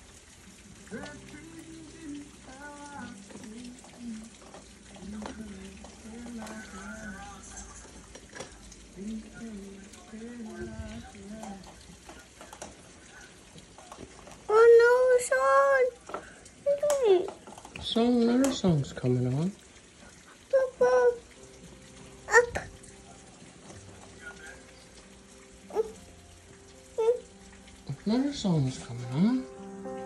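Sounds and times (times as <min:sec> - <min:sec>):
rain patter: 0:00.0 - 0:30.0.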